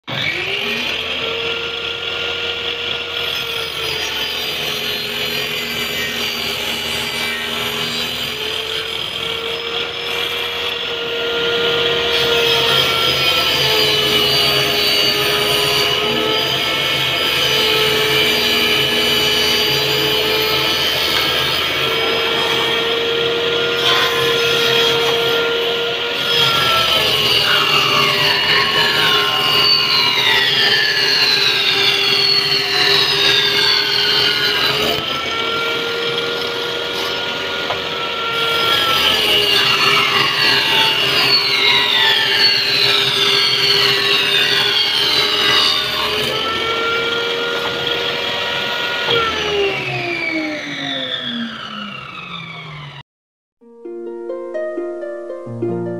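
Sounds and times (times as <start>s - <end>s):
table saw cutting plywood: 0.0s - 53.0s
falling whistling tones: 27.4s - 34.8s.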